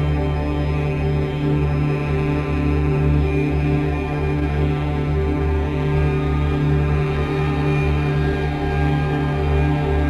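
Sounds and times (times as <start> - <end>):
droning background music: 0.0 - 10.0.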